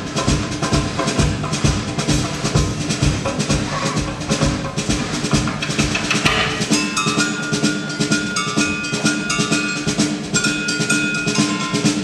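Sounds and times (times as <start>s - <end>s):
rapid drum strokes: 0.0s - 12.0s.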